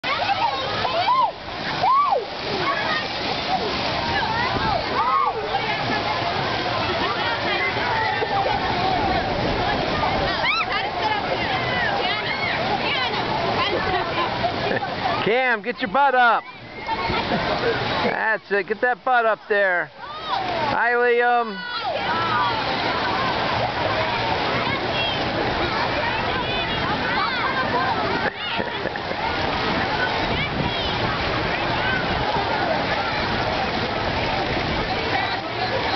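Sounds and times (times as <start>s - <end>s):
children's voices calling: 0.0s - 15.3s, 16.3s - 18.5s, 19.8s - 20.8s, 21.4s - 35.9s
water splashing and running: 0.0s - 35.9s.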